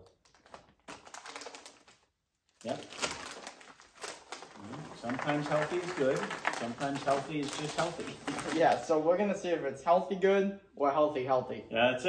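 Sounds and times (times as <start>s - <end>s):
foil snack bag crinkling: 0.2s - 8.9s
corn puffs rattling into tray: 4.2s - 8.8s.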